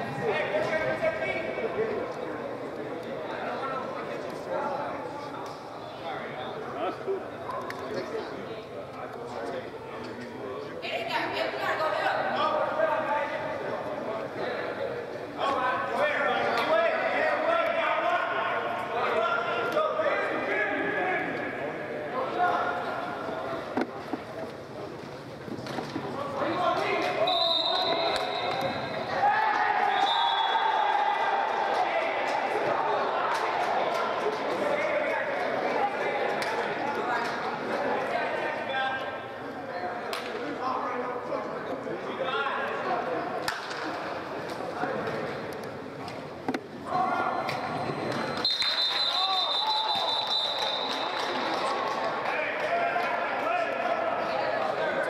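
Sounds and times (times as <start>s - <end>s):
voices echoing in sports hall: 0.0s - 55.0s
referee's whistle: 27.2s - 29.1s, 29.9s - 30.8s, 47.8s - 51.2s.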